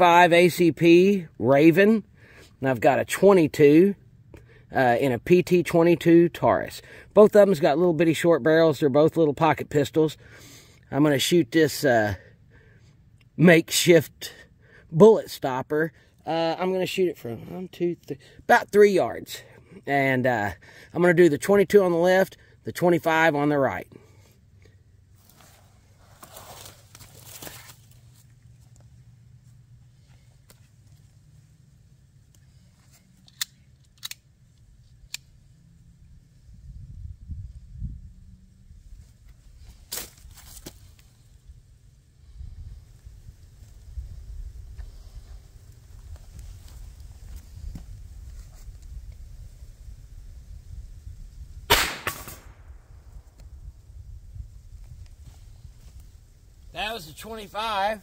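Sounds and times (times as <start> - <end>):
pistol shot: 51.7 - 52.8.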